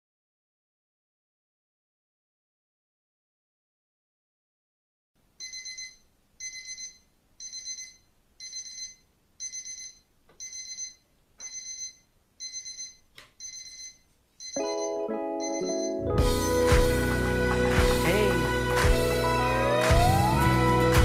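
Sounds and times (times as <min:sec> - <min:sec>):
music: 0:14.6 - 0:21.0.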